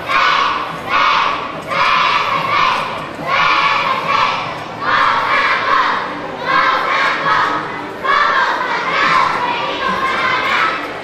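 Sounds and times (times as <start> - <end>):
cheerleaders shouting in unison: 0.0 - 11.0.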